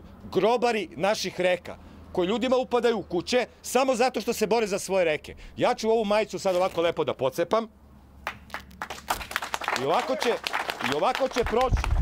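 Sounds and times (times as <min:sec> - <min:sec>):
crowd applause: 0:08.8 - 0:12.0.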